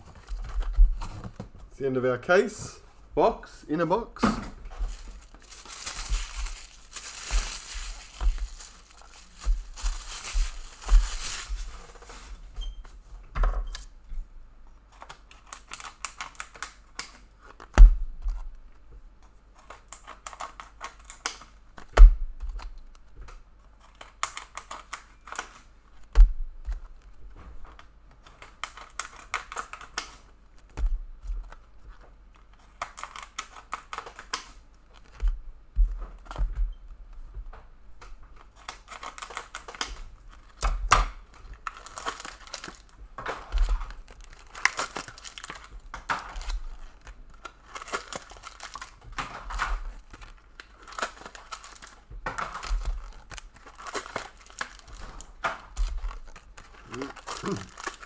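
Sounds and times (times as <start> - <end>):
cards handled: 4.7 - 12.4, 52.5 - 58.0
wrappers tearing and crinkling: 4.7 - 12.4, 15.0 - 17.7, 19.6 - 21.5, 23.7 - 25.7, 28.3 - 30.7, 31.4 - 35.2, 38.4 - 58.0.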